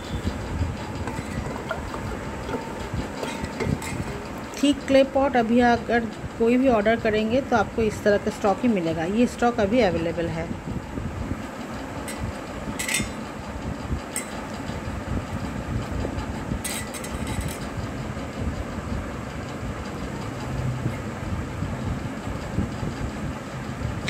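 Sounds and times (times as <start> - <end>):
low rumbling background noise: 0.0 - 24.0.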